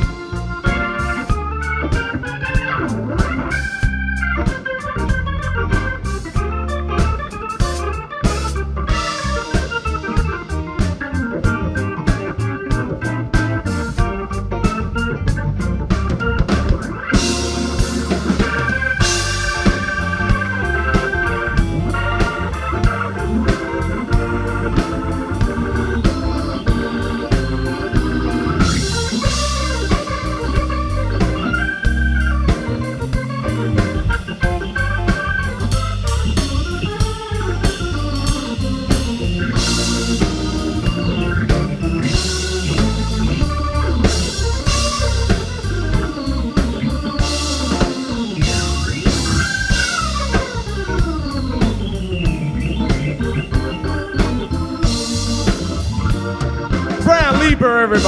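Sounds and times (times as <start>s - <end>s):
bass: 0.0s - 58.0s
organ chords and runs: 0.0s - 58.0s
steady drums: 0.0s - 58.0s.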